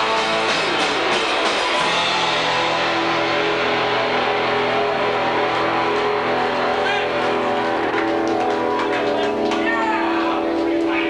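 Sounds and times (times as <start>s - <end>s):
punk rock band playing: 0.0s - 11.0s.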